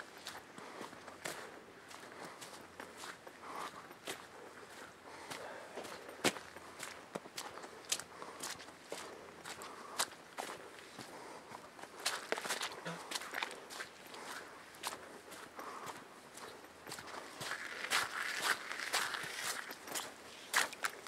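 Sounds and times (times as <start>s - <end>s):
footsteps on muddy dirt trail: 0.0s - 21.0s.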